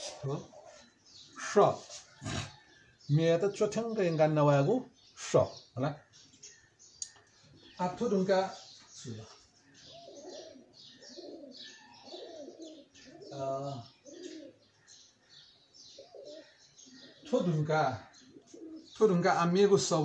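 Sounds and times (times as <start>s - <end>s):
pigeons cooing: 0.0s - 5.0s, 7.4s - 20.0s
small birds chirping: 0.0s - 20.0s.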